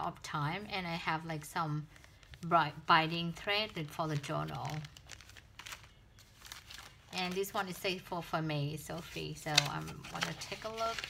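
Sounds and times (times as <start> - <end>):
plastic bag crinkling: 1.8 - 7.8, 9.4 - 11.0.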